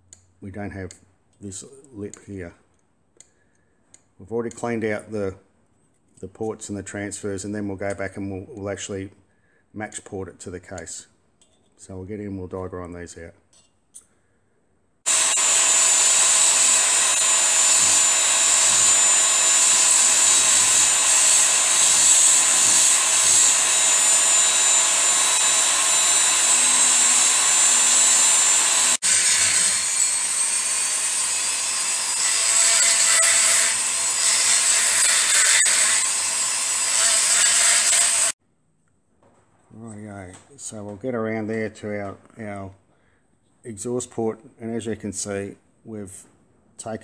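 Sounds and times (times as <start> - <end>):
die grinder grinding metal: 15.1 - 38.4.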